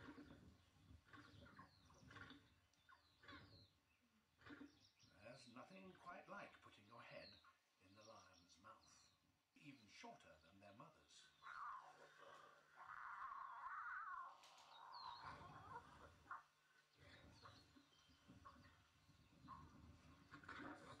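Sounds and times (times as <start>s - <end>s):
faint animal calls: 0.0s - 5.4s, 11.2s - 21.0s.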